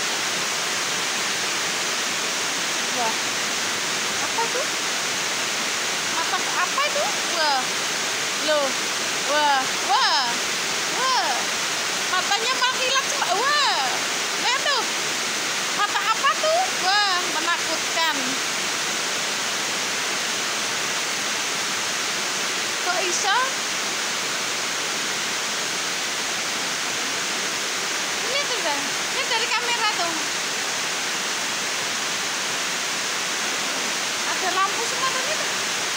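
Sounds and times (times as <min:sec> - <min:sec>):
rain hissing: 0:00.0 - 0:35.9.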